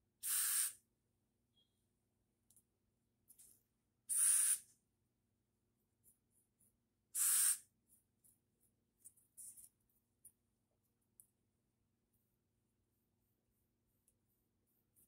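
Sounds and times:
hairspray can hissing: 0:00.2 - 0:00.8, 0:04.1 - 0:04.7, 0:07.2 - 0:07.7.

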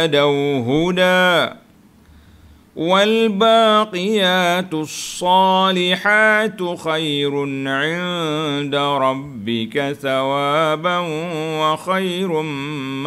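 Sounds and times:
man chanting melodically: 0:00.0 - 0:01.6, 0:02.8 - 0:13.0.

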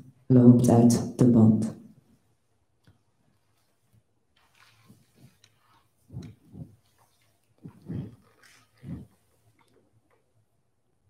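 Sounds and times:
person making breathy vocal sounds: 0:07.6 - 0:09.1.

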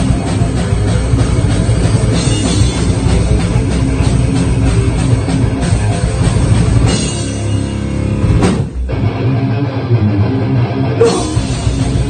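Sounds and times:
electric guitar and bass riff: 0:00.0 - 0:12.0
drum and cymbal hit: 0:11.0 - 0:12.0.

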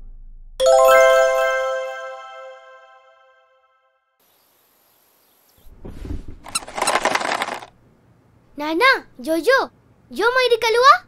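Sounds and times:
rattling clattery noise: 0:06.4 - 0:07.7
high cartoon voice speaking: 0:08.6 - 0:11.0.

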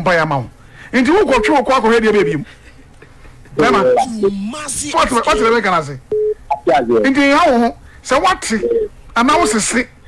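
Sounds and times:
person speaking: 0:00.9 - 0:02.6, 0:03.4 - 0:05.7, 0:06.5 - 0:09.6
short steady beep: 0:03.6 - 0:04.2, 0:08.6 - 0:08.9.

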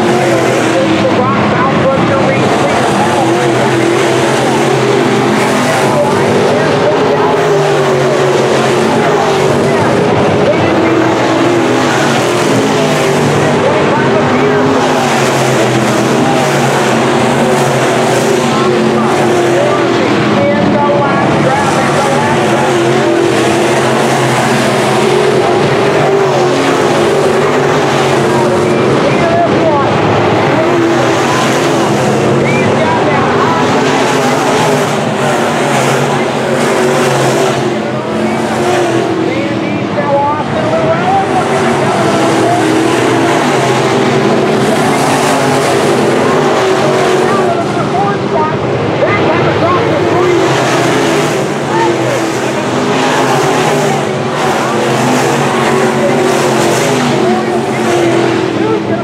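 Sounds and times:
race car engines droning: 0:00.0 - 0:59.0.

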